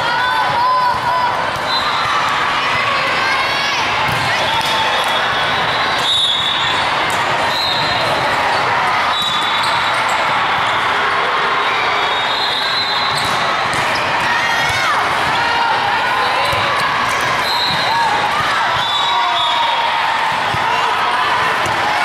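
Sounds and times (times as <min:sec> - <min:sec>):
chatter of many people: 0:00.0 - 0:22.0
sneakers squeaking on court: 0:12.9 - 0:14.2.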